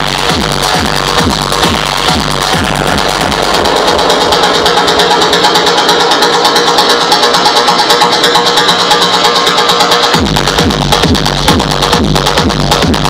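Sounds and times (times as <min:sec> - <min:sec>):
fast percussive roll: 0:00.1 - 0:09.2
sustained droning tones: 0:01.4 - 0:09.3.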